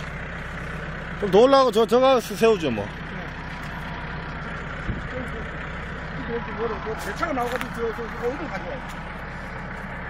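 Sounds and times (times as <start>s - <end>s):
diesel engine idling: 0.0s - 10.0s.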